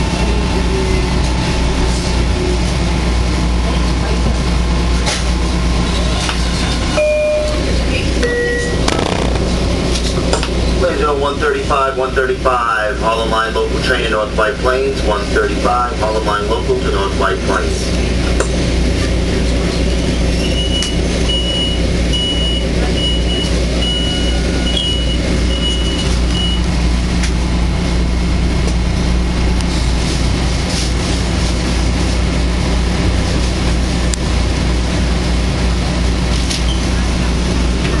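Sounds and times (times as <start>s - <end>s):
electric train hum: 0.0s - 38.0s
short high beeps: 7.0s - 8.9s.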